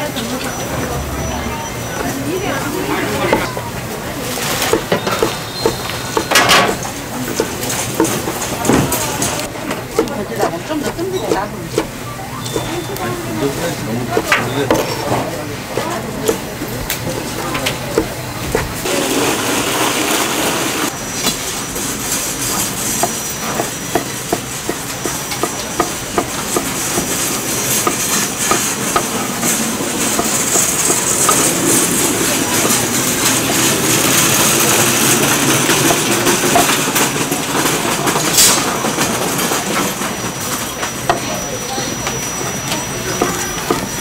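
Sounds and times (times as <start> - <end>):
busy market noise: 0.0 - 44.0.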